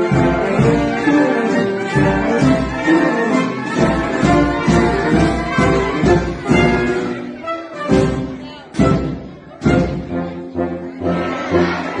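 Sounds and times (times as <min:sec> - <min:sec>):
military band playing chords: 0:00.0 - 0:12.0.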